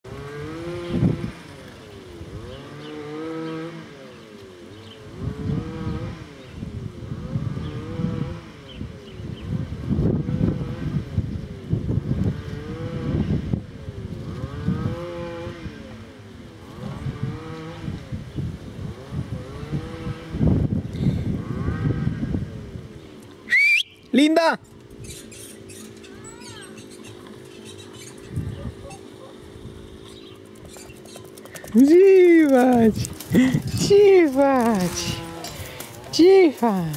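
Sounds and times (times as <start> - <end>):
metal swing creaking: 24.7 - 29.1.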